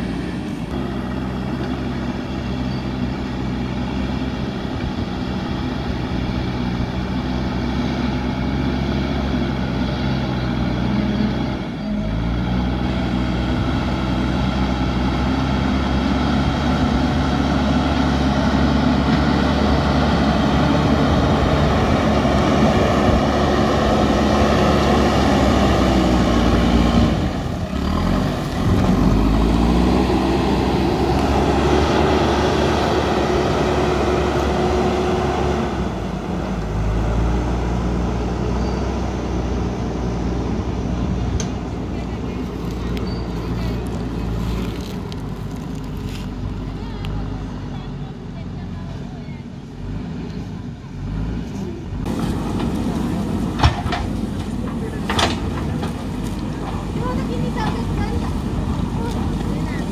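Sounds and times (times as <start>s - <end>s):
diesel engine under load: 0.0s - 59.9s.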